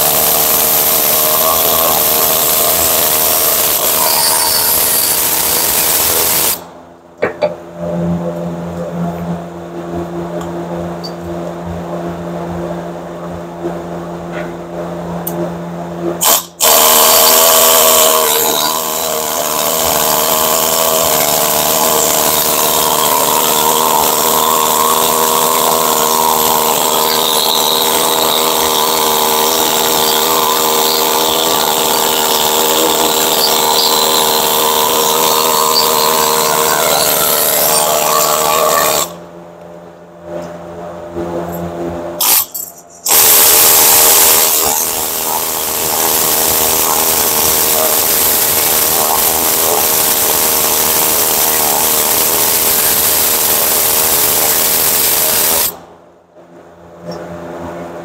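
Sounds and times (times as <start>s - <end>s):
power tool wire brush scraping: 0.0s - 6.7s, 16.2s - 39.2s, 41.4s - 55.8s.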